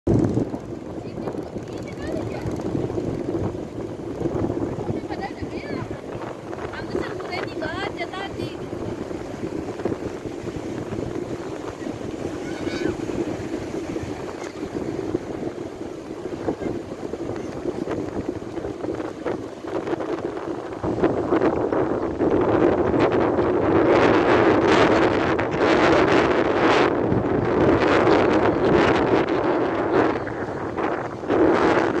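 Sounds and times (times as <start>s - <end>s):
ocean surf breaking: 0.1s - 32.0s
wind buffeting microphone: 0.1s - 32.0s.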